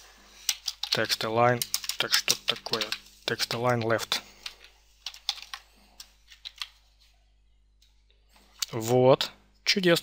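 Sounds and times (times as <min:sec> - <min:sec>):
computer keyboard typing: 0:00.5 - 0:06.8.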